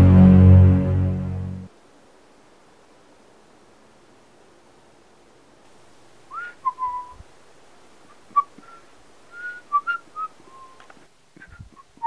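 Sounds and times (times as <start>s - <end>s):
faint hiss: 0.0s - 12.0s
person whistling a tune: 6.4s - 7.2s, 9.4s - 10.8s.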